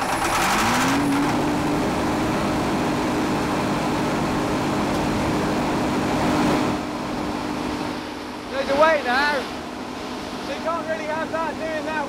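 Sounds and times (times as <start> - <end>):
diesel generator running: 0.0 - 12.0.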